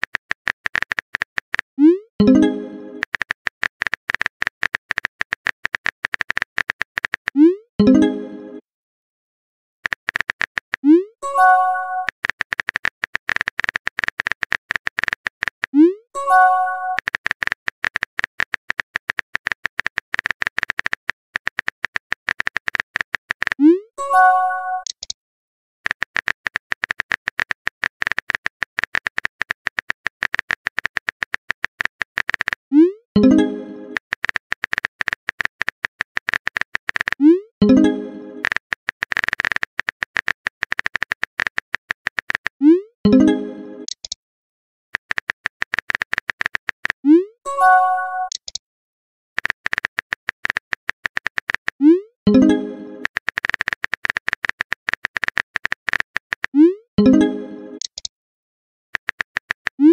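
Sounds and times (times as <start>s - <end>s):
rapid keyboard typing clicks: 0.0s - 7.4s, 9.8s - 11.1s, 11.9s - 15.8s, 16.4s - 23.7s, 25.8s - 44.2s, 45.0s - 47.1s, 49.4s - 58.1s, 59.0s - 59.9s.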